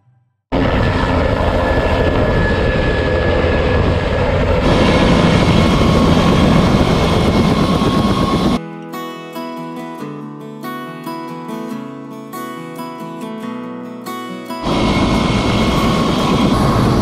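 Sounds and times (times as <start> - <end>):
helicopter rotor and turbine noise: 0.5 - 8.6, 14.6 - 17.0.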